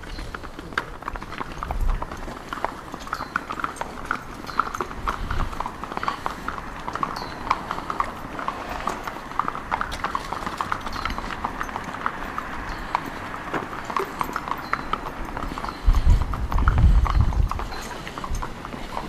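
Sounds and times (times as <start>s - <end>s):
horse hooves on hard ground: 0.0s - 19.0s.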